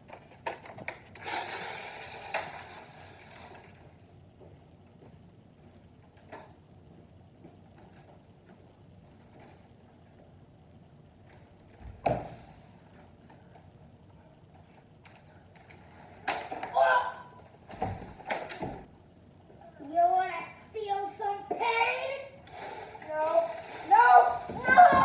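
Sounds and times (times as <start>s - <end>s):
children calling out: 16.6s - 17.4s, 23.2s - 25.0s
child crying: 16.7s - 17.4s, 23.9s - 25.0s.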